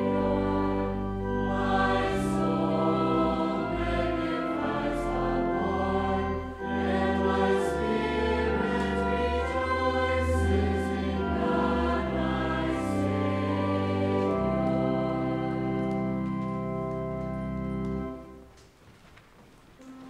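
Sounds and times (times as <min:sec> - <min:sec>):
voices singing a hymn: 0:00.0 - 0:16.9
organ chords: 0:00.0 - 0:18.6.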